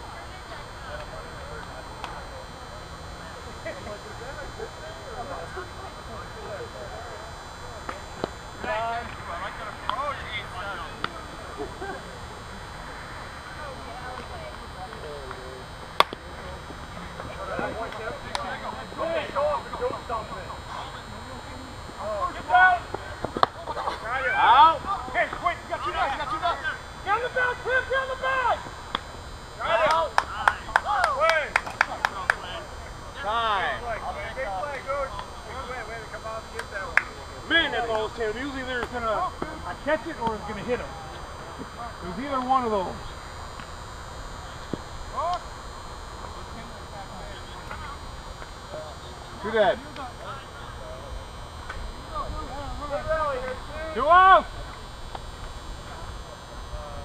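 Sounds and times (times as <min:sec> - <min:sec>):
sharp claps or clicks: 0:16.0 - 0:16.2, 0:29.8 - 0:32.4, 0:36.5 - 0:37.2
people shouting and calling out: 0:22.0 - 0:28.7.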